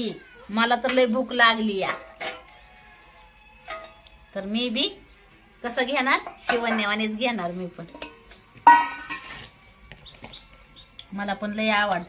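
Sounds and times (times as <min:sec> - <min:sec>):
faint background music: 0:00.0 - 0:12.0
woman speaking: 0:11.1 - 0:12.0.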